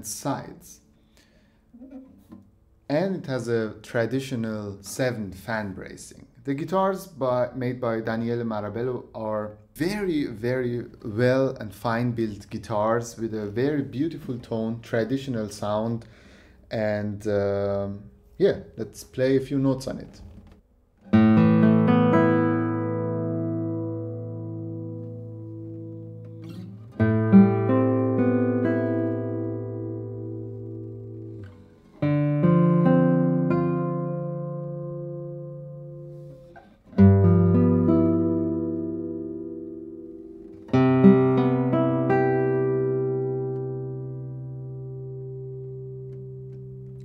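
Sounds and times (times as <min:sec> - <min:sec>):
classical guitar chords ringing: 0:00.1 - 0:04.5, 0:21.0 - 0:47.0.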